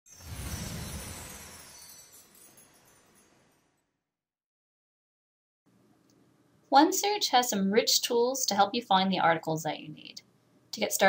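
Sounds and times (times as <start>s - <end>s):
bright sparkling shimmer: 0.1s - 4.0s
low rumble: 0.2s - 2.0s.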